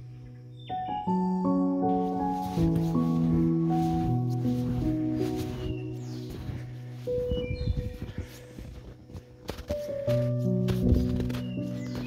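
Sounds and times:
background music sustained note: 0:00.0 - 0:12.0
footsteps in deep snow: 0:01.9 - 0:12.0.

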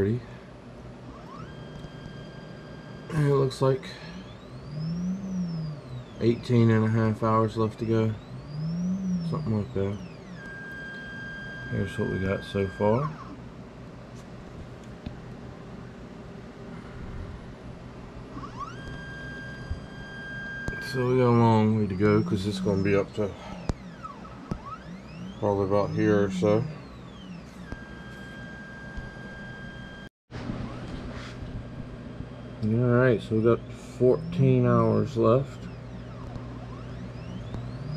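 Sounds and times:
stepper motor whine: 0:00.0 - 0:13.9, 0:16.3 - 0:37.9
printer low steady hum: 0:00.0 - 0:37.9.

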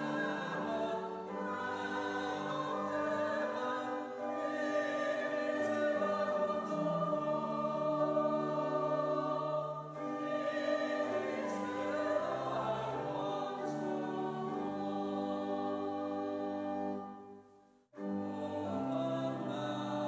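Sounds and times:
congregation singing a hymn: 0:00.0 - 0:17.4, 0:18.0 - 0:20.0
organ chords: 0:00.0 - 0:17.4.

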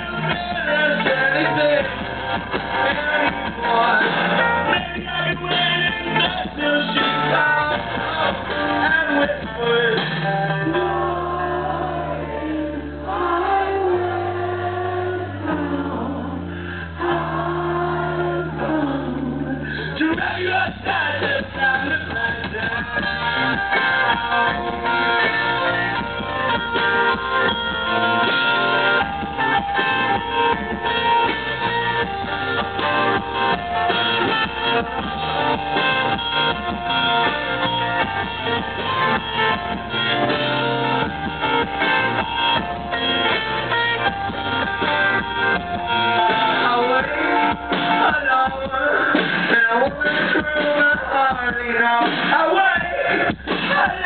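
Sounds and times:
live rock band playing: 0:00.0 - 0:54.0
strummed guitar: 0:00.0 - 0:54.0.

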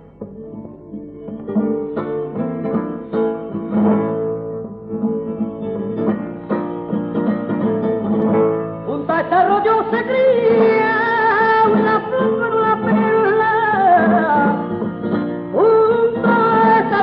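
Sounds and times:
flamenco guitar playing: 0:00.0 - 0:17.0.

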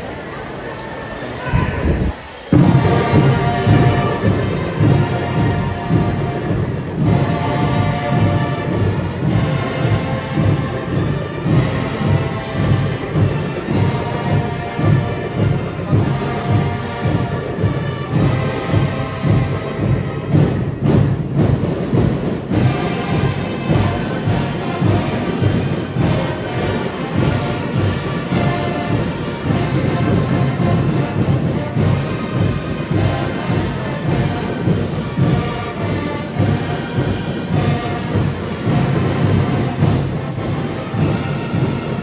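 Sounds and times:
brass sustained chords: 0:01.4 - 0:19.9.

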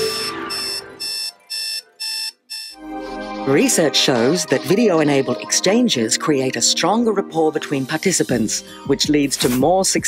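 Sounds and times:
alarm clock beeping: 0:00.0 - 0:02.9.

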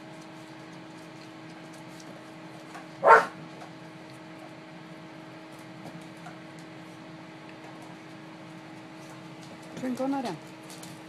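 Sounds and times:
dog barking: 0:03.0 - 0:03.4.

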